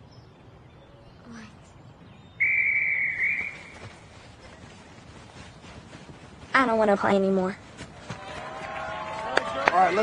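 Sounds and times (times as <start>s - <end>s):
referee's whistle: 2.4s - 3.7s.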